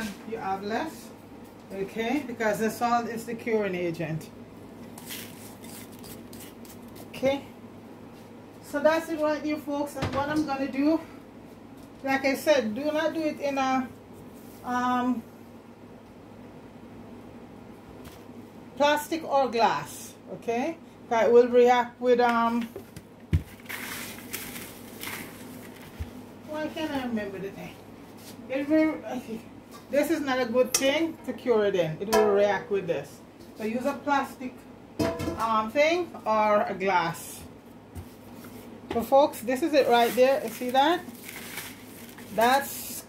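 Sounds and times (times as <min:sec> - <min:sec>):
scratchy rustles: 0:04.9 - 0:07.2, 0:39.8 - 0:42.6
salt pouring into plastic bucket: 0:23.6 - 0:25.4.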